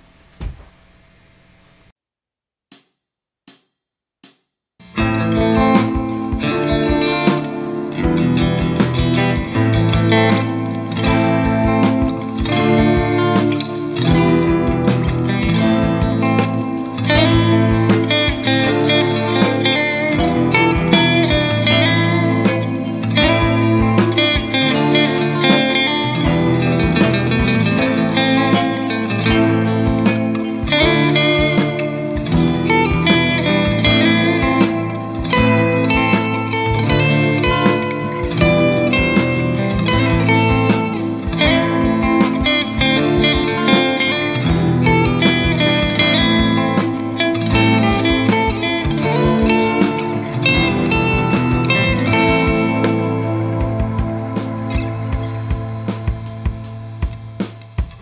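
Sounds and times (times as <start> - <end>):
clean electric guitar: 4.8 - 58.0.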